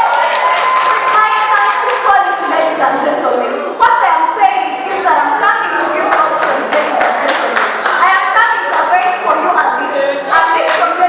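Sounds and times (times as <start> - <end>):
woman's amplified speech: 1.1 - 11.0.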